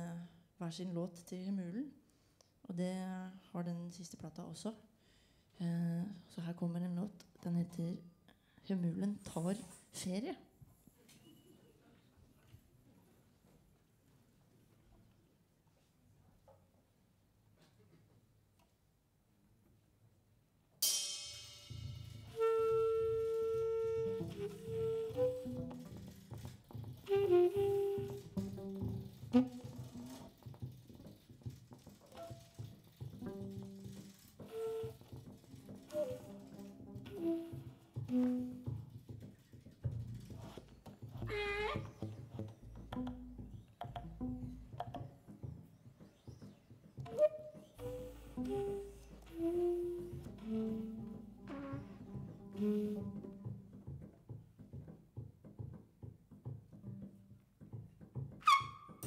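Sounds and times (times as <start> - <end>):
drums: 20.8 - 59.0
tenor saxophone: 22.0 - 30.6, 33.2 - 39.0, 40.4 - 45.0, 47.0 - 53.7
double bass: 22.0 - 59.0
trumpet: 26.8 - 30.4, 33.2 - 38.8
piano: 47.0 - 53.3.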